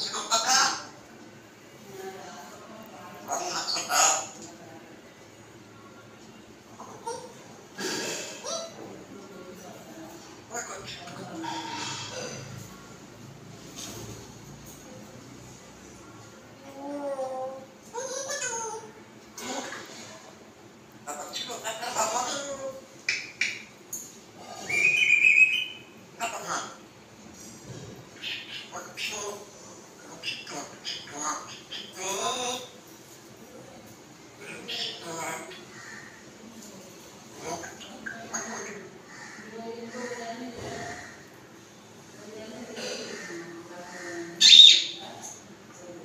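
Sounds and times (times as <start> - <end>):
parrot squawk: 3.3 - 4.4, 24.6 - 26.8, 44.4 - 45.0
parrot whistling: 24.7 - 25.8.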